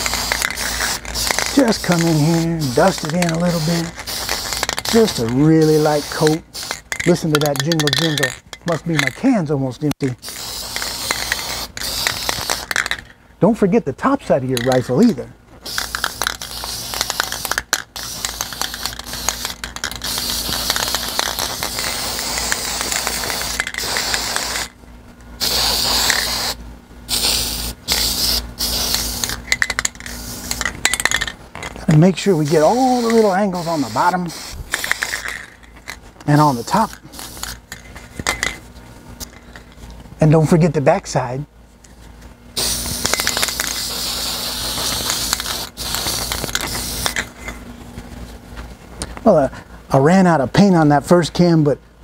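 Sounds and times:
aerosol spray can hissing: 0.0 - 8.2, 10.2 - 12.8, 15.6 - 24.7, 25.4 - 29.4, 32.4 - 35.5, 36.4 - 37.6, 42.6 - 47.2.

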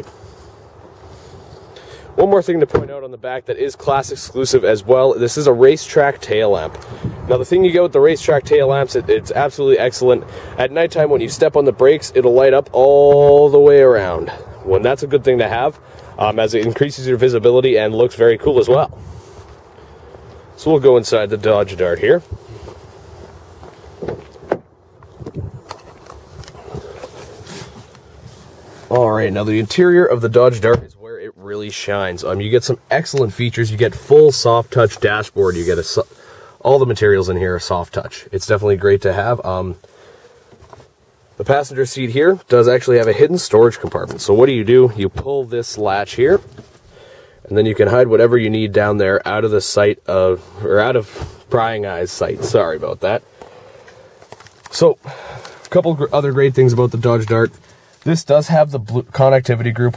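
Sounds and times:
outdoor background noise: 0.0 - 59.9
rustling: 12.2 - 30.7, 31.6 - 59.9
wind on microphone: 18.7 - 19.4, 25.0 - 26.9.

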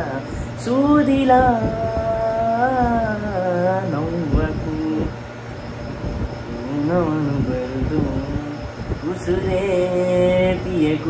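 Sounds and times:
man singing unaccompanied: 0.0 - 5.3, 6.5 - 11.0.

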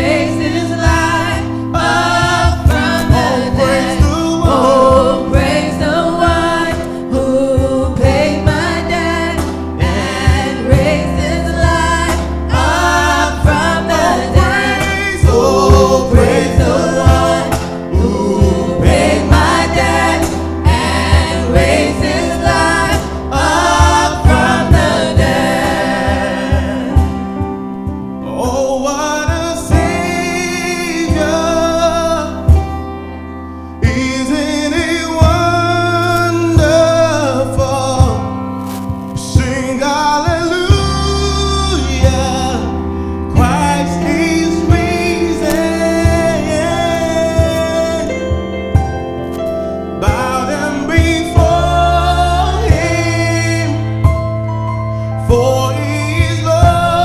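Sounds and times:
voices singing together: 0.0 - 27.3, 50.0 - 53.8
electric keyboards: 0.0 - 57.0
steady beat: 7.6 - 28.2.

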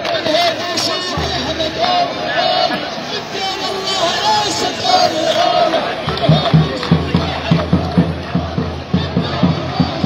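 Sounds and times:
crowd chanting slogans: 0.0 - 10.0.

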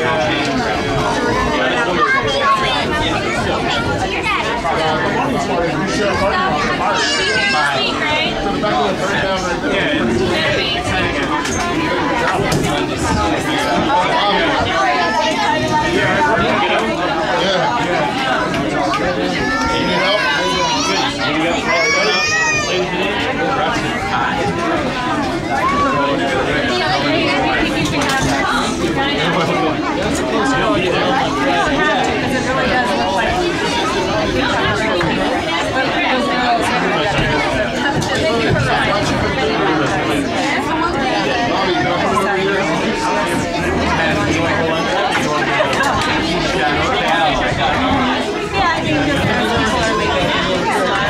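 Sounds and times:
overlapping chatter of people: 0.0 - 51.0.

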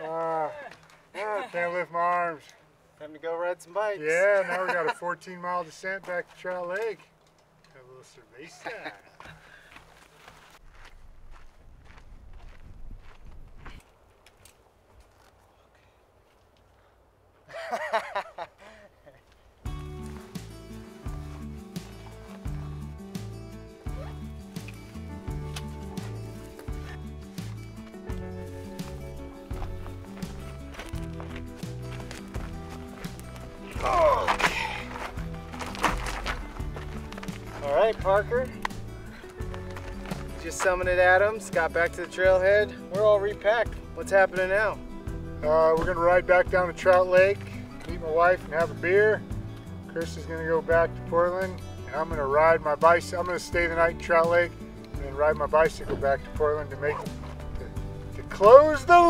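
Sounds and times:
footsteps on dirt trail: 5.8 - 7.1, 9.1 - 16.9, 19.1 - 59.0
background music with bass line: 19.7 - 59.0.

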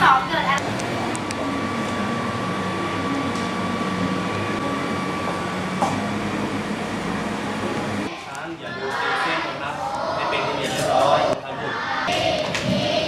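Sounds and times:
machine room hum: 0.0 - 13.0
thin high whine: 0.0 - 13.0.

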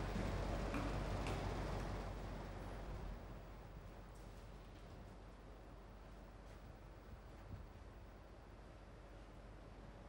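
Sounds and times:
low steady hum and hiss: 0.0 - 10.0.

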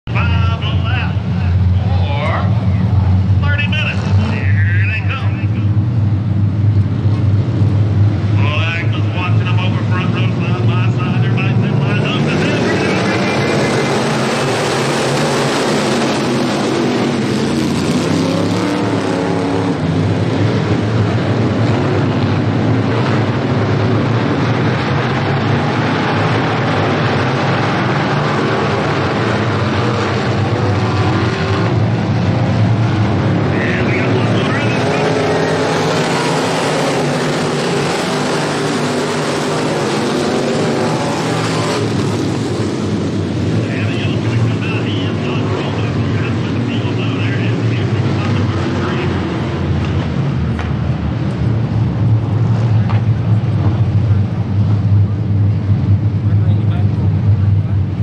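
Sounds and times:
engines at full throttle whining: 0.0 - 58.0
stock car engines rumbling: 0.0 - 58.0.

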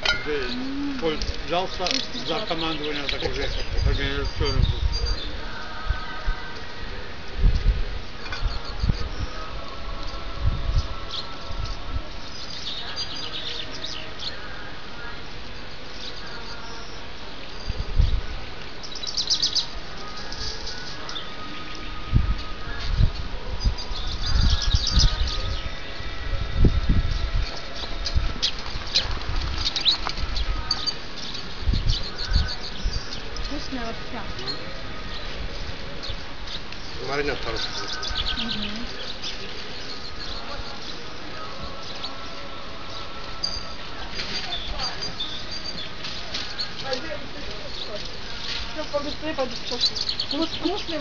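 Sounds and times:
small birds chirping: 0.0 - 6.2, 7.6 - 51.0.

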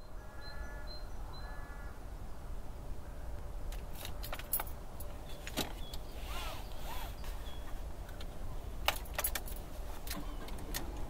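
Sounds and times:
light clicks and rattles: 3.7 - 6.1, 7.2 - 11.0.

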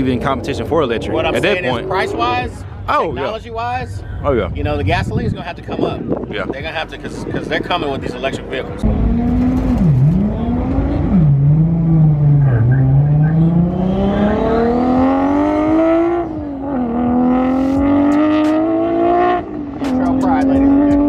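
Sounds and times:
car accelerating through gears: 8.8 - 21.0.

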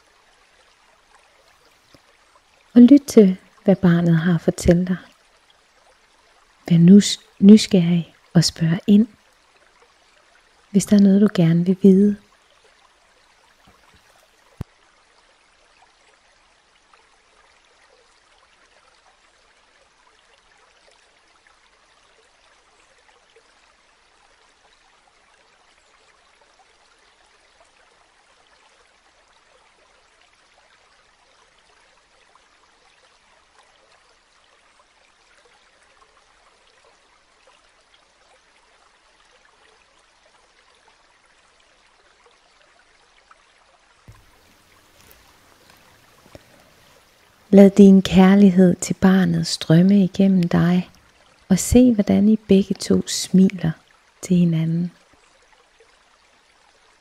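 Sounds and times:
stream flowing and trickling: 0.0 - 57.0.

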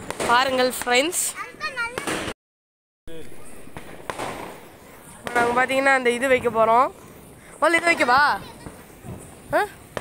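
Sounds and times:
sharp firecracker cracks: 1.9 - 2.4, 3.2 - 5.7
firecracker hissing: 3.3 - 10.0.

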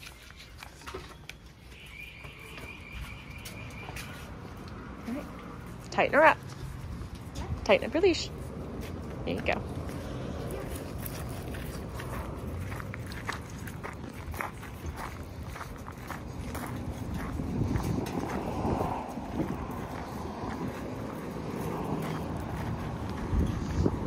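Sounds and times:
footsteps on gravel: 8.2 - 24.0.

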